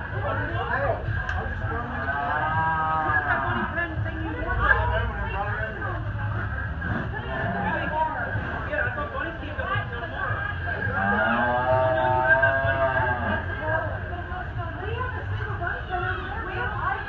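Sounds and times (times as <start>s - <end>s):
people chatting: 0.0s - 17.0s
cow mooing: 7.2s - 7.9s, 10.8s - 13.4s.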